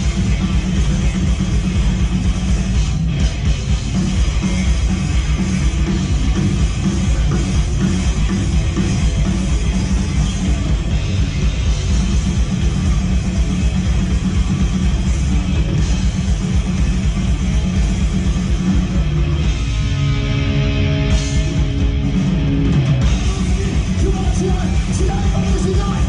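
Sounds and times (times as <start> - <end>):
metal band playing live: 0.0 - 26.0.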